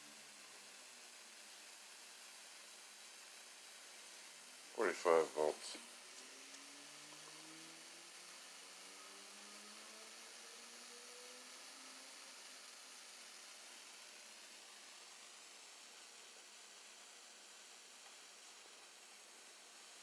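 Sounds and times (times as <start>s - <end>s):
corona discharge hiss: 0.0s - 20.0s.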